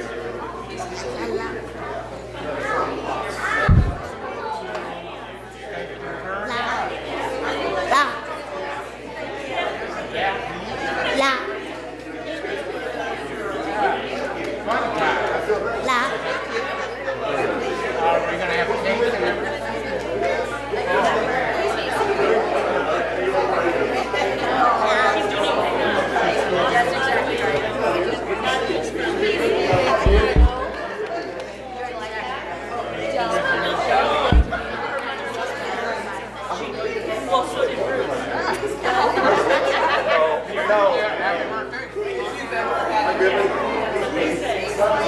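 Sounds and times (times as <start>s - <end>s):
many voices chatting: 0.0s - 45.0s
low thumps: 3.7s - 4.2s, 29.7s - 30.8s, 34.3s - 34.9s.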